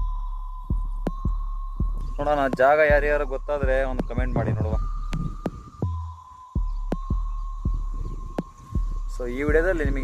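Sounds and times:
wind buffeting microphone: 0:01.9 - 0:10.0.

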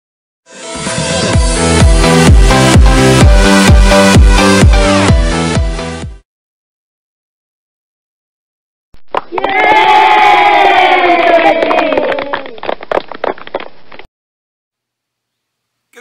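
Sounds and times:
sharp claps: 0:09.0 - 0:09.6, 0:11.2 - 0:14.1
voices shouting and cheering: 0:09.3 - 0:12.5.

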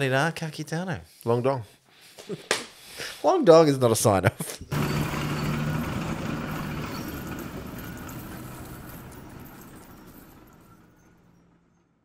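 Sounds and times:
low machine hum: 0:04.7 - 0:11.8
coins sliding and jingling: 0:04.8 - 0:10.8.

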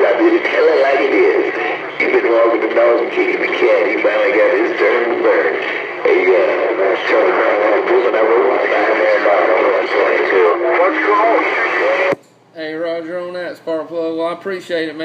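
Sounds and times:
clear radio voice: 0:00.0 - 0:12.2
garbled radio voice: 0:00.0 - 0:12.2.

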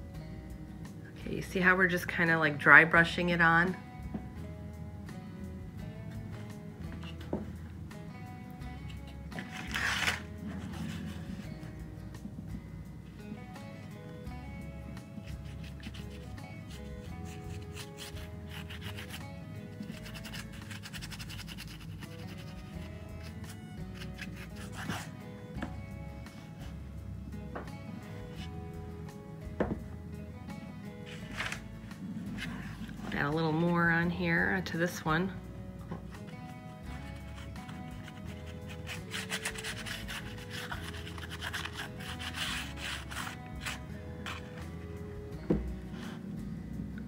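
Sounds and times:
instrumental background music: 0:00.0 - 0:47.0
paintbrush scratching on book cover: 0:09.4 - 0:11.6, 0:15.2 - 0:25.1, 0:31.1 - 0:33.2, 0:36.3 - 0:44.8.

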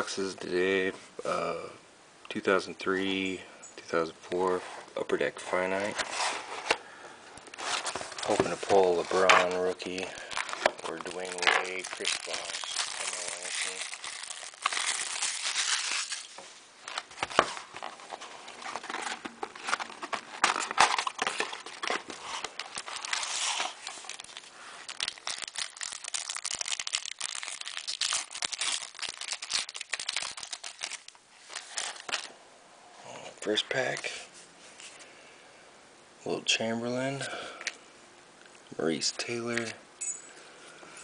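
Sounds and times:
plastic shrink wrap crinkling: 0:07.4 - 0:32.3
cardboard box being opened: 0:16.9 - 0:24.2.

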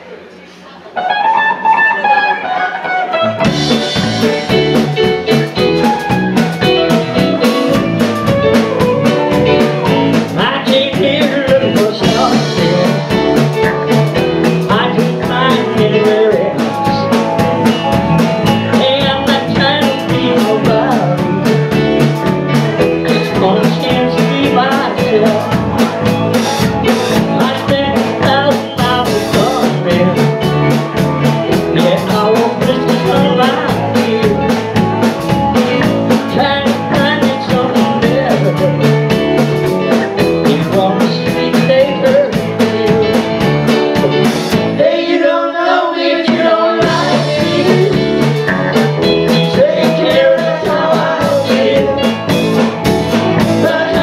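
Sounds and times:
electric guitar: 0:00.8 - 0:45.0, 0:46.3 - 0:54.0
band playing with drums and bass: 0:00.9 - 0:54.0.

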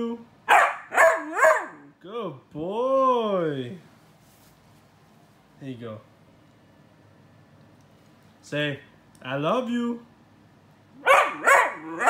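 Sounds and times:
puppy howling calls: 0:11.0 - 0:12.0.

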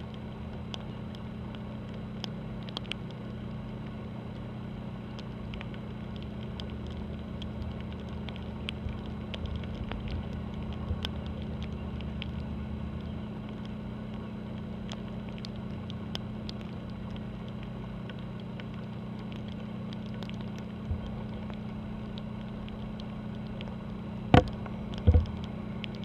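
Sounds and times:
deep hum: 0:00.0 - 0:26.0
low drone of ship engines: 0:00.0 - 0:26.0
raindrops ticking: 0:00.0 - 0:26.0.

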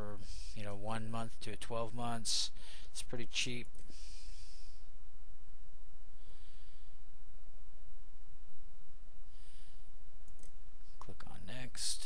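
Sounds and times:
low electrical hum: 0:00.0 - 0:12.0
soft breath: 0:00.2 - 0:00.6, 0:02.5 - 0:03.0, 0:03.8 - 0:05.0, 0:06.1 - 0:07.2, 0:09.2 - 0:10.1
faint clicks: 0:10.2 - 0:11.2.

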